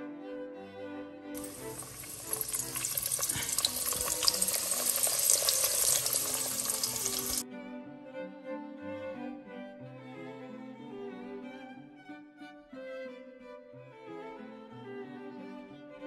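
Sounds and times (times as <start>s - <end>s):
soft bowed-string music: 0.0s - 3.1s, 4.5s - 16.0s
pastries sizzling in hot oil: 1.4s - 7.4s.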